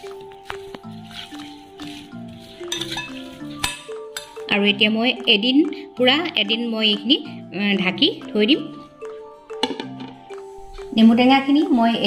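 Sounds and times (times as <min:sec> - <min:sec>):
background music: 0:00.0 - 0:12.0
metal spoon clinking glass bowl: 0:02.6 - 0:04.5.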